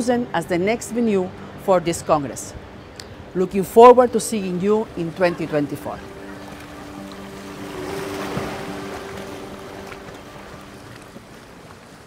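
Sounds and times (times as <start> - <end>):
wash of seaside noise: 1.0 - 12.0.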